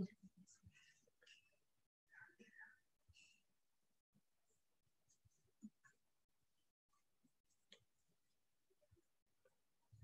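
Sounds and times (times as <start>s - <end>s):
faint whispered voice: 0.0s - 3.5s.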